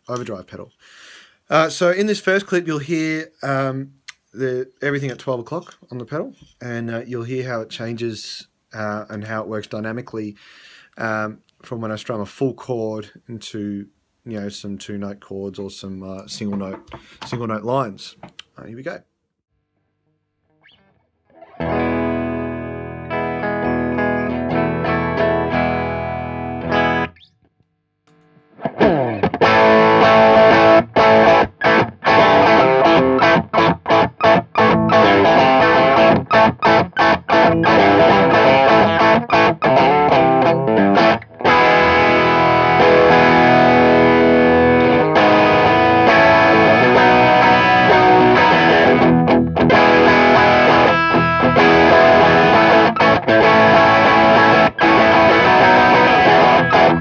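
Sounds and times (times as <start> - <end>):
rhythmic guitar chord strumming: 20.7 - 27.3, 28.4 - 57.0
overdriven electric guitar chord: 21.4 - 27.2, 28.1 - 57.0.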